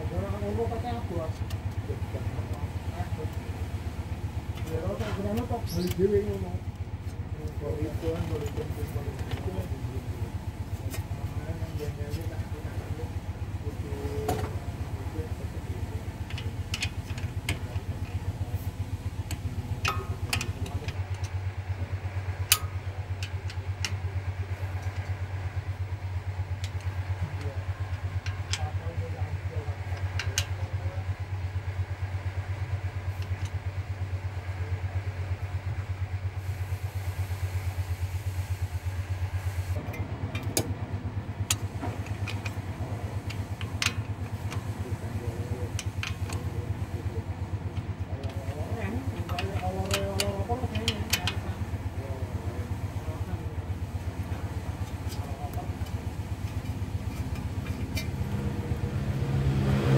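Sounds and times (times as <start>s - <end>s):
engine idling: 0.0s - 59.9s
metallic clicks of hand tools: 49.2s - 51.5s.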